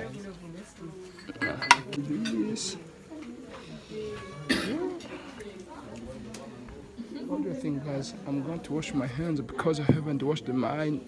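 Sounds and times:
background chatter: 0:00.0 - 0:11.0
loud cough: 0:04.5 - 0:04.9.

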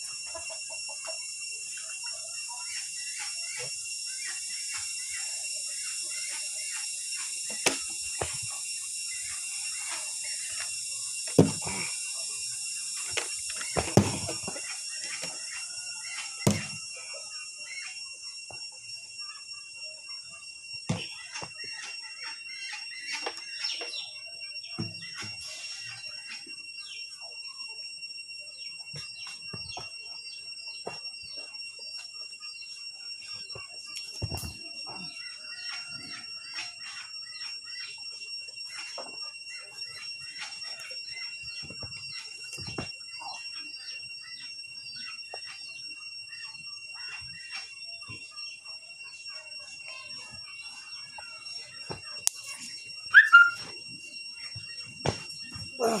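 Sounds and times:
faint chirps and ticks: 0:00.0 - 0:55.8
steady high whistling tone: 0:00.0 - 0:56.0.

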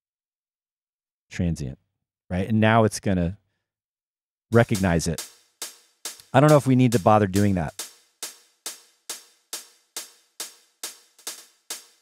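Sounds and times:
electronic closed hi-hat pattern: 0:04.5 - 0:12.0.

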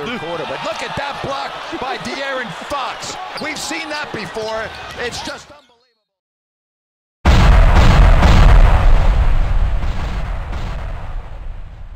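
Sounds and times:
booming impact with deep rumble: 0:07.3 - 0:11.9.

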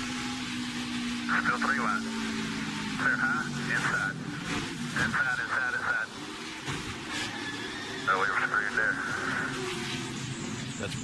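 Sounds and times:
race car engine: 0:00.0 - 0:11.0.

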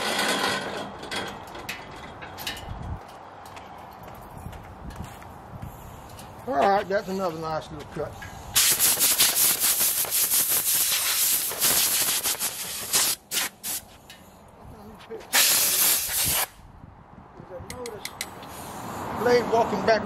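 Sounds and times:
compressed air blow gun hissing: 0:08.5 - 0:14.0, 0:15.3 - 0:16.6.

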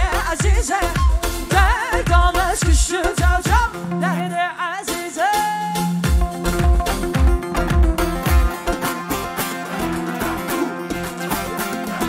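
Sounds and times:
heavy bass beat: 0:00.0 - 0:03.8, 0:06.0 - 0:09.0
plucked string instrument: 0:00.0 - 0:12.0.

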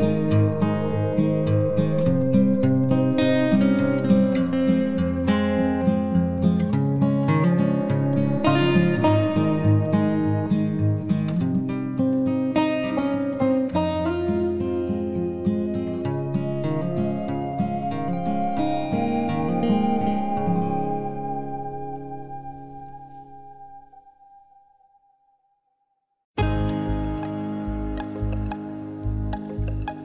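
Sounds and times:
picked acoustic guitar: 0:00.0 - 0:24.1.

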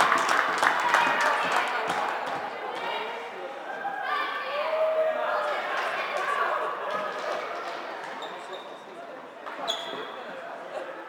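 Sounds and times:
voices and chatter: 0:00.8 - 0:11.0.

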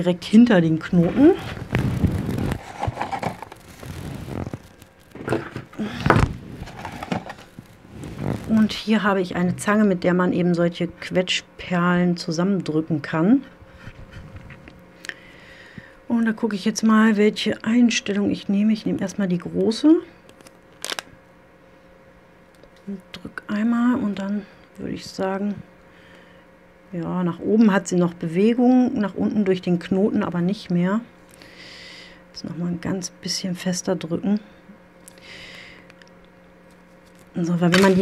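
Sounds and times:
rustling and scraping of small objects: 0:00.9 - 0:08.8, 0:36.6 - 0:38.0.

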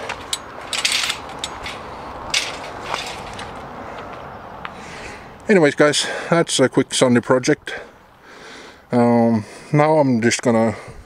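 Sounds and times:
mesh trailer rattling: 0:00.0 - 0:03.7
gravel crunching: 0:00.0 - 0:06.3.

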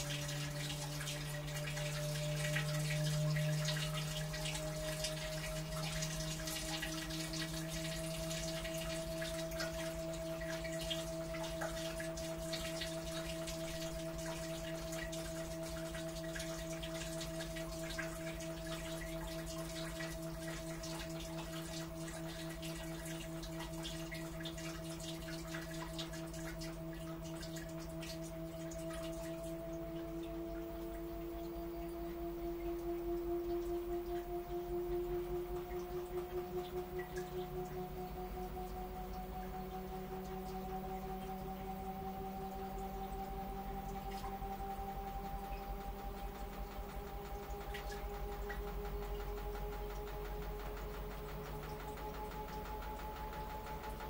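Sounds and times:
washing machine motor whine: 0:00.0 - 0:54.0
water splashing and trickling: 0:00.0 - 0:54.0.

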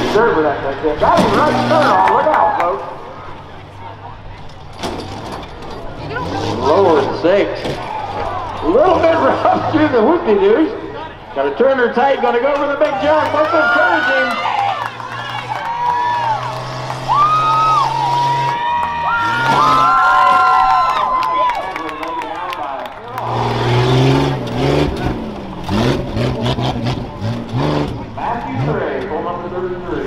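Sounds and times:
truck engine revving: 0:00.0 - 0:30.0
spectators shouting: 0:01.0 - 0:03.4, 0:07.8 - 0:11.3, 0:11.9 - 0:24.9.

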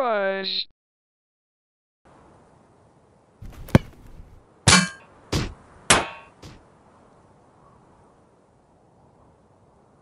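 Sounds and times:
sharp knock: 0:03.4 - 0:06.1.

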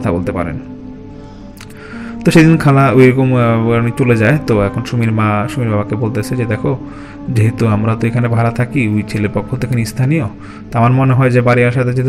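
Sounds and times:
man narrating: 0:00.0 - 0:00.8, 0:02.1 - 0:12.0
sustained background music: 0:00.0 - 0:12.0.

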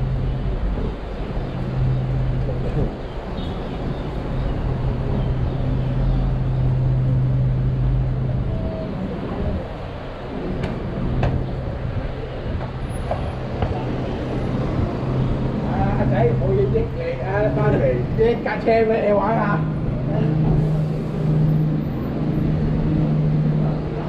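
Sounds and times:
roadway noise hiss: 0:00.0 - 0:24.0
vehicle engine droning: 0:00.0 - 0:24.0.

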